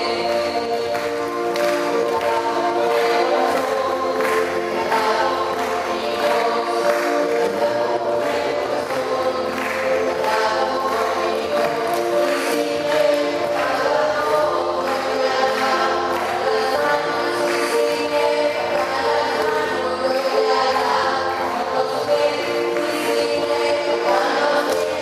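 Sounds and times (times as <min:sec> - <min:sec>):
choir singing a hymn: 0:00.0 - 0:25.0
rhythmic accompaniment: 0:00.0 - 0:25.0.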